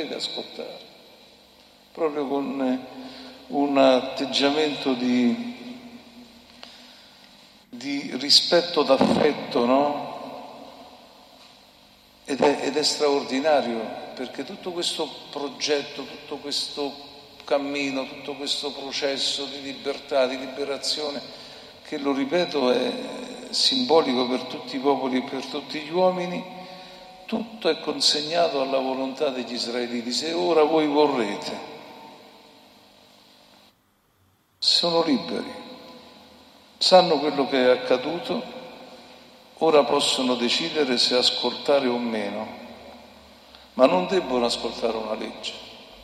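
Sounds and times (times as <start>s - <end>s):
man's voice reverberating: 0.0s - 1.1s, 1.9s - 7.0s, 7.7s - 11.2s, 12.2s - 32.6s, 34.6s - 46.0s
faint room hiss: 0.0s - 46.0s.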